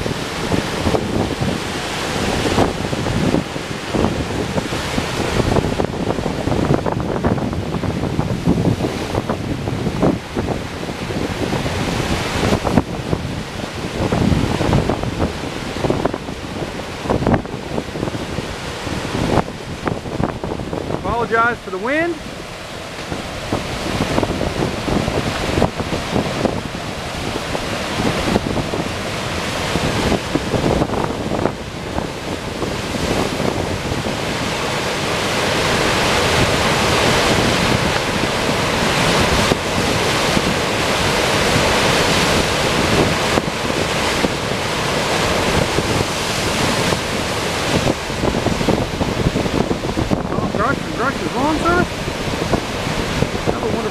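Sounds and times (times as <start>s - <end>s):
water rushing over a dam: 0.0s - 53.9s
wind buffeting microphone: 0.0s - 53.9s.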